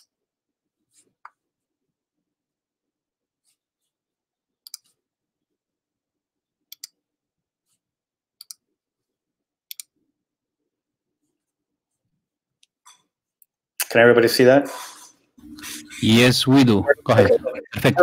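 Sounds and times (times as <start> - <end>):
computer mouse clicking: 4.6 - 4.9, 6.7 - 7.0, 8.4 - 8.7, 9.7 - 10.0.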